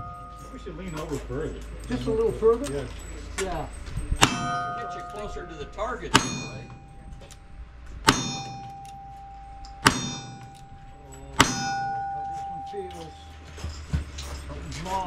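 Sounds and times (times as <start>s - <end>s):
steel target ringing: 0.0s - 2.2s, 3.5s - 13.8s.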